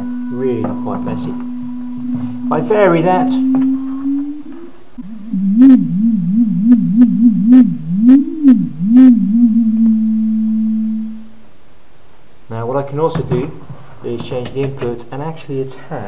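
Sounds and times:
low electronic tone sliding in pitch: 0.0s - 11.3s.

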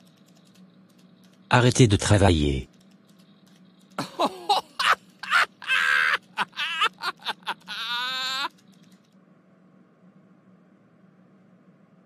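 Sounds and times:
wavering drawn-out cry: 4.0s - 8.6s
person shouting: 7.7s - 8.5s.

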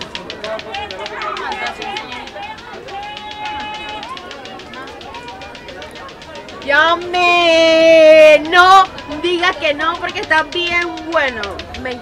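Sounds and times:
outdoor crowd bustle: 0.0s - 12.0s.

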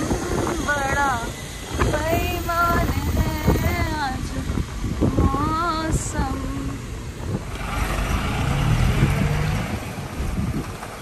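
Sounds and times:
car road and engine noise: 0.0s - 11.0s
wind: 0.0s - 11.0s.

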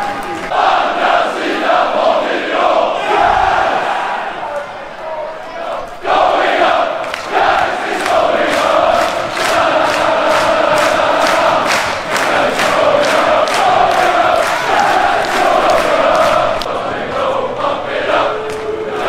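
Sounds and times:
rhythmic hand claps: 0.0s - 2.1s, 6.1s - 19.0s
crowd chanting: 0.0s - 19.0s.

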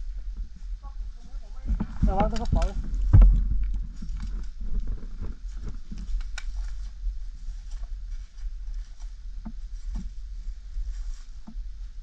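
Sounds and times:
crackles and clicks: 0.0s - 10.2s
low rumble: 0.0s - 12.0s.

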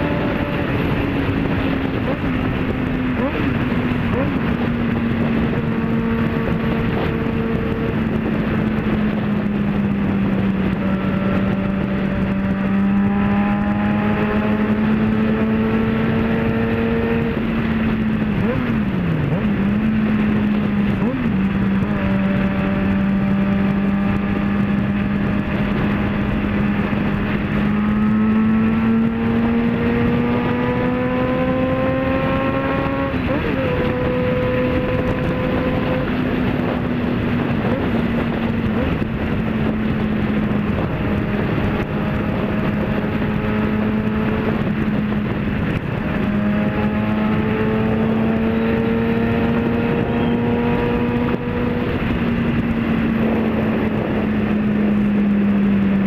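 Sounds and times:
motorcycle engine cruising: 0.0s - 56.0s
wind rush: 0.0s - 56.0s.

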